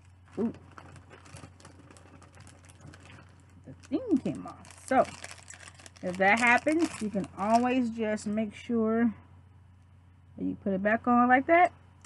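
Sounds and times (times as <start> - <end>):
plastic pin and packaging rustling: 0.0 - 7.9
low steady hum: 0.0 - 12.0.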